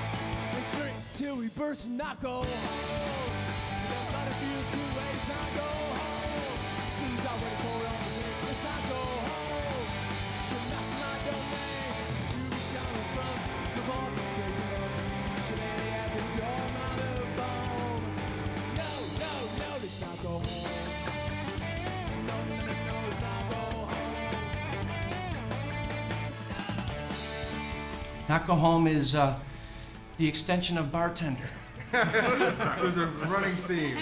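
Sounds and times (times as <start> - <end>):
steady bass line: 0.0 - 1.0, 2.4 - 34.0
drum kit with cymbals: 0.0 - 30.9
strummed guitar: 2.4 - 34.0.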